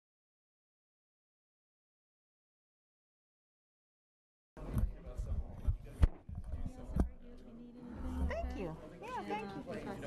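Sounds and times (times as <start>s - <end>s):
low background talk: 4.6s - 10.0s.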